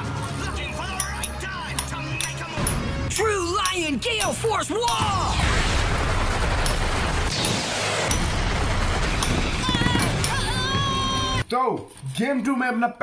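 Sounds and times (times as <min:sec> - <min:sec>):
music: 0:00.0 - 0:05.2
sharp hits: 0:02.6 - 0:10.6
drawn-out shout: 0:09.6 - 0:11.4.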